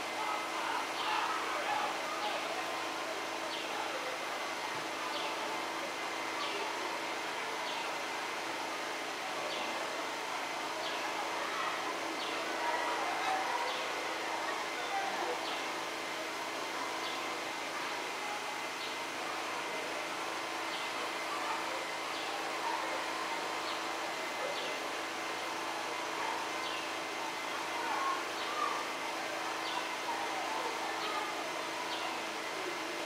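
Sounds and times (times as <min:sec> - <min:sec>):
murmur of distant voices: 0:00.0 - 0:33.0.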